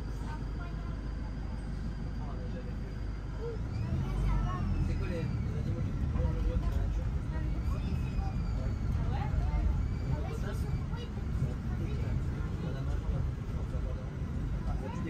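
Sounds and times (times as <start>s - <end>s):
faint passenger voices: 0.0s - 15.0s
minibus engine and road rumble: 0.0s - 15.0s.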